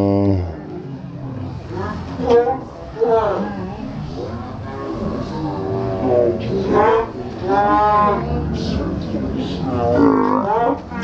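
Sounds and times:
man's moo-like vocal call: 0.0 - 0.6, 9.7 - 11.0.

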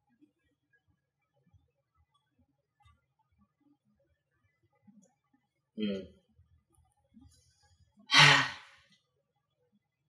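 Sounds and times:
person sighing: 8.1 - 8.7.

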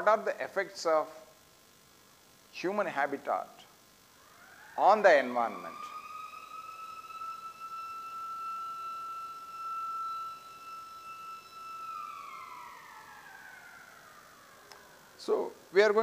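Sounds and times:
siren winding down: 4.2 - 16.0.

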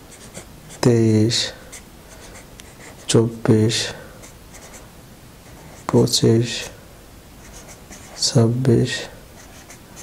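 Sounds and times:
marker pen scratching on paper: 0.1 - 0.9, 1.7 - 3.2, 4.2 - 4.8, 5.5 - 6.1, 7.4 - 8.4, 9.4 - 10.0.

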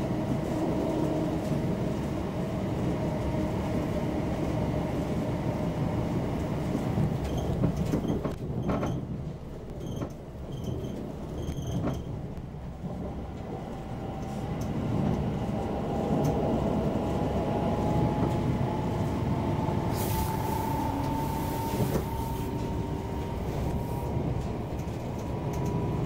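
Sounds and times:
train wheels rumbling on track: 0.0 - 26.0
train motor whine rising: 19.5 - 23.8
short air hiss: 19.9 - 22.4.

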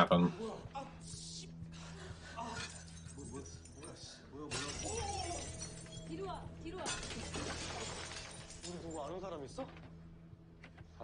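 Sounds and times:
crashing shattering noise: 6.9 - 9.0.

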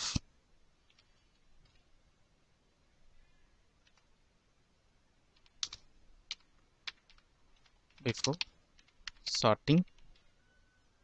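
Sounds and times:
faint keyboard keystrokes: 3.8 - 4.1, 5.3 - 10.4.

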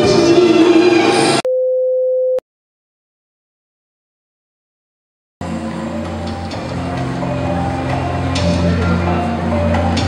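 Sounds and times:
music: 0.0 - 1.4, 5.4 - 10.0.

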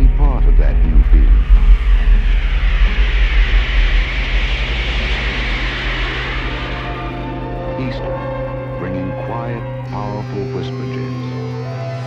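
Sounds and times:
aircraft passing overhead: 0.0 - 12.0
steady low hum: 0.0 - 12.0.

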